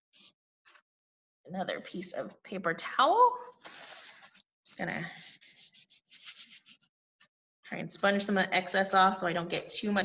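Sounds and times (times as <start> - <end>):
paper towel rubbing: 5.1 - 6.9.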